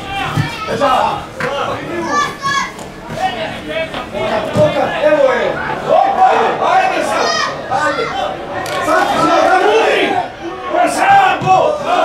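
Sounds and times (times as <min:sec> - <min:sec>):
people shouting: 0:00.0 - 0:03.5, 0:04.2 - 0:12.0.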